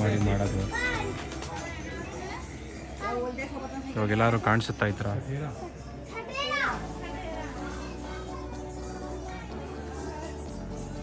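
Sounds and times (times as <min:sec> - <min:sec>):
background music: 0:00.0 - 0:03.3, 0:06.7 - 0:11.0
high child's voice: 0:06.1 - 0:06.9, 0:07.6 - 0:10.2.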